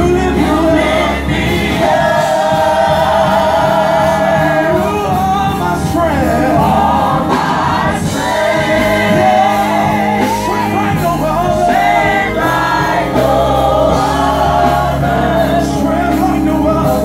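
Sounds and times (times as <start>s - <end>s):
man singing lead: 0.0s - 2.0s, 3.3s - 7.7s, 8.8s - 13.2s, 14.2s - 17.0s
backing singers: 0.0s - 17.0s
low steady accompaniment: 0.0s - 17.0s.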